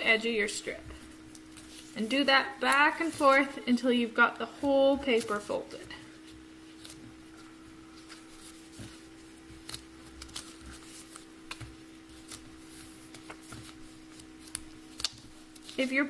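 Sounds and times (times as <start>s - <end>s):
faint steady hum: 0.0s - 16.0s
paper strip crinkling and tapping: 0.8s - 3.6s, 4.5s - 16.0s.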